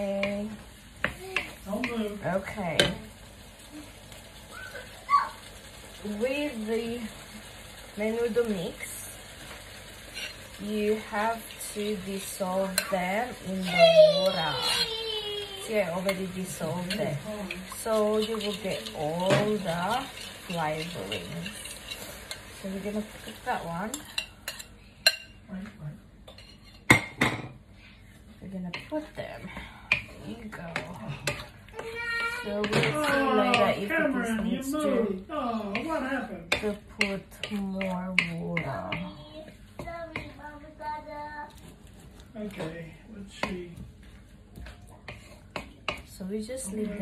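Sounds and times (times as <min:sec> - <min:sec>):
food frying in a wok: 0:00.0 - 0:40.5.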